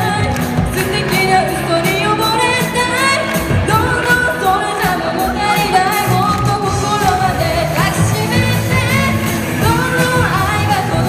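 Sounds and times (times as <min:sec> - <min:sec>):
drum kit beat: 0:00.0 - 0:11.0
electric guitars: 0:00.0 - 0:11.0
woman singing lead: 0:00.0 - 0:11.0.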